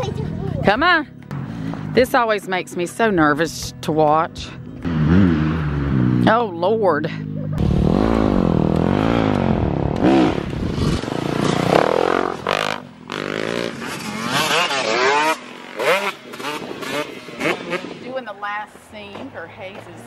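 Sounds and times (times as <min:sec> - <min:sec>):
dirt bike engines revving: 0:04.8 - 0:20.0.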